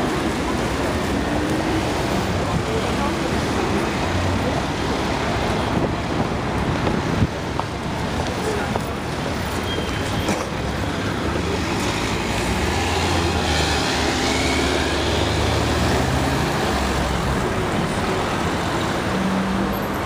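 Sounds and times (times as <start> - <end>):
city street traffic: 0.0 - 20.0.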